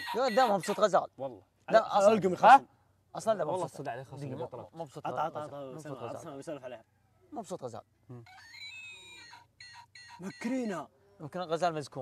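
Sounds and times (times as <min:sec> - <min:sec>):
toy electronic animal call: 0:00.0 - 0:00.8, 0:08.2 - 0:10.8
toy short chirps: 0:08.2 - 0:10.5.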